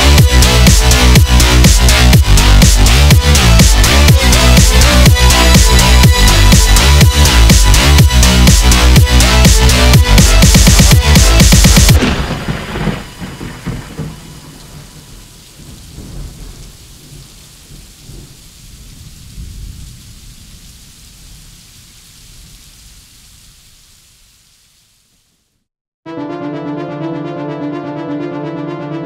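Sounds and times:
brass-like synth chords: 0:00.0 - 0:12.0, 0:26.1 - 0:29.0
electronic synth music: 0:00.0 - 0:12.0, 0:26.1 - 0:29.0
thunder rumbling: 0:00.0 - 0:23.9
rain: 0:00.0 - 0:25.7.

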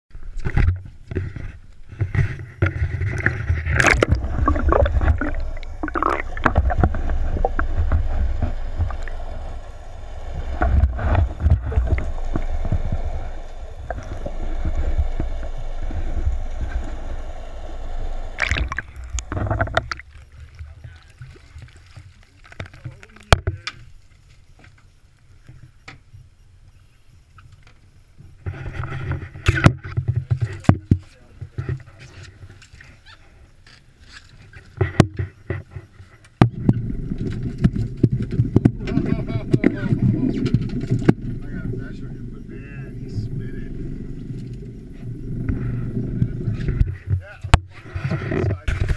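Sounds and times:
water rushing and gurgling: 0:00.2 - 0:23.4, 0:36.5 - 0:48.9
loud steady low rumble: 0:03.2 - 0:20.0, 0:36.6 - 0:46.9.

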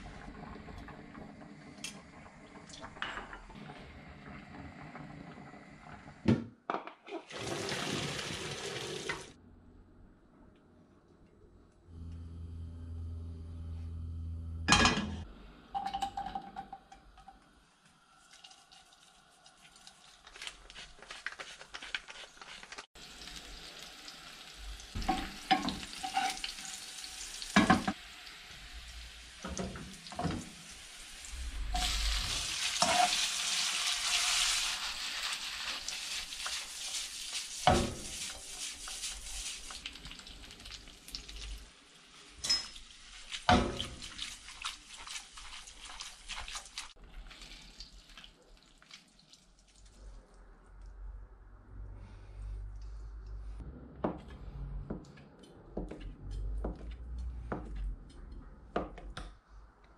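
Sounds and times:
water poured into a steel sink: 0:07.2 - 0:09.4, 0:18.1 - 0:20.6
garlic frying in oil: 0:18.2 - 0:49.6.

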